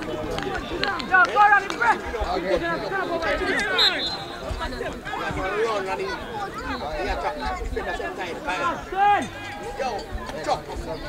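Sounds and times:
people talking and calling out: 0.0 - 11.0
loud raised call: 2.7 - 4.5.

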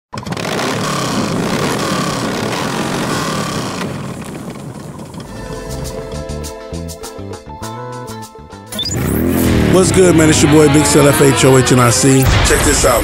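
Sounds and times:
motorcycle engine revving: 0.2 - 6.5, 8.7 - 12.4.

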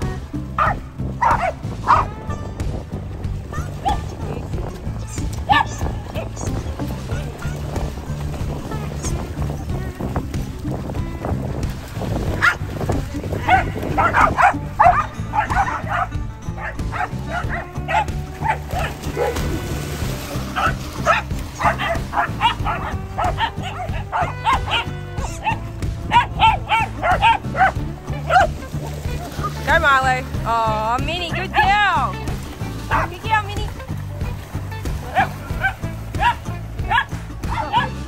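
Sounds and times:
background music with low beat: 0.0 - 38.0
dogs barking: 0.6 - 2.2, 3.6 - 4.2, 5.4 - 6.4, 12.3 - 12.7, 13.3 - 29.6, 34.8 - 38.0.

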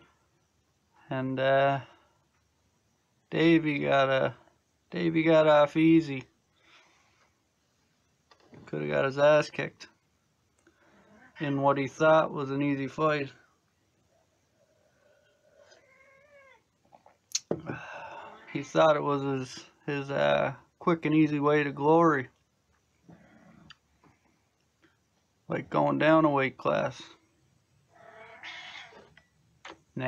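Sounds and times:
cat meowing: 15.8 - 16.6, 28.0 - 29.2.

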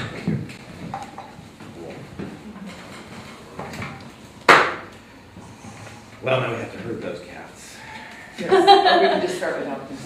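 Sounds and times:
faint room murmur: 0.0 - 10.0.

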